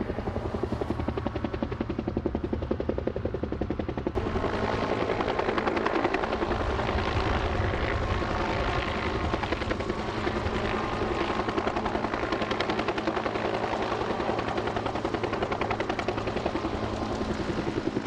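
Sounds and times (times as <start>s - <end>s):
helicopter rotor beating: 0.0s - 18.0s.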